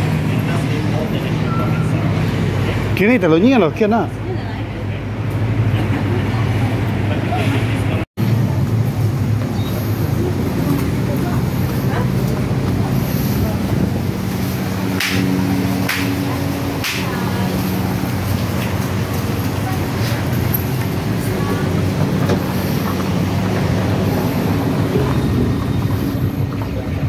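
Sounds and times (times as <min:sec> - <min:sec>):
people talking nearby: 0:00.0 - 0:08.6, 0:09.4 - 0:27.0
car engines and road noise: 0:00.0 - 0:27.0.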